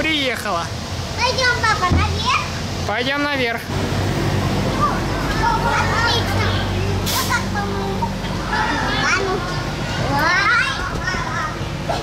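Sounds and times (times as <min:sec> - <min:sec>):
steady low hum: 0:00.0 - 0:12.0
children's voices and shouts: 0:01.1 - 0:02.6, 0:04.6 - 0:12.0.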